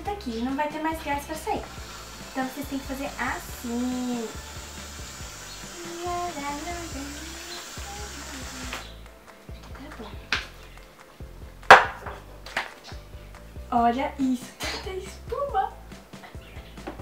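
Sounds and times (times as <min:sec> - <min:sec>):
aerosol can spraying: 0:01.0 - 0:09.0
sharp knocks: 0:11.7 - 0:12.7.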